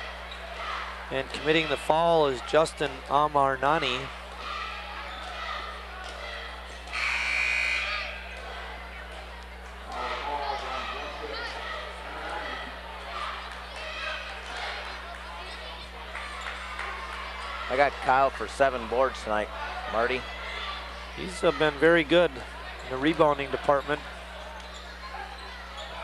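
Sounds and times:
crowd chatter: 0.0s - 26.0s
buzzer tone: 6.9s - 8.2s.

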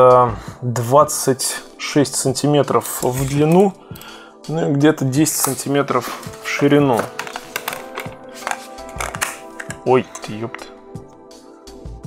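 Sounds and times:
background music: 0.0s - 12.0s
plastic casing clicks and knocks: 5.4s - 10.8s.

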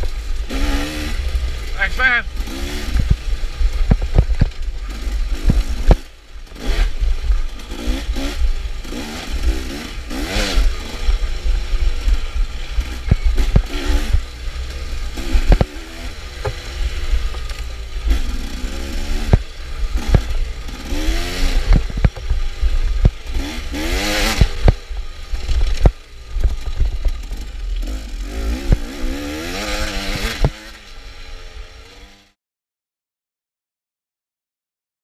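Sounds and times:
dirt bike engine revving: 0.0s - 32.4s
bike knocks and clatter: 16.4s - 17.6s.

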